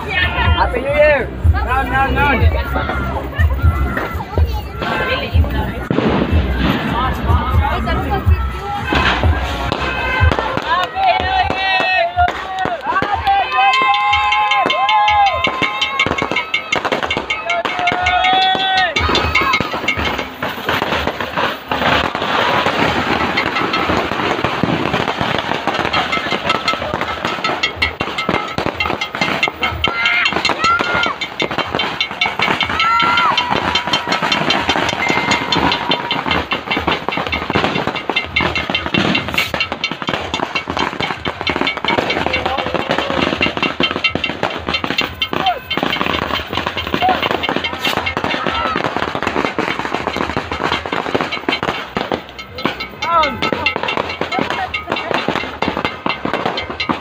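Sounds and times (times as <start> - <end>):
firecrackers crackling: 0.0 - 57.0
people's voices: 0.0 - 57.0.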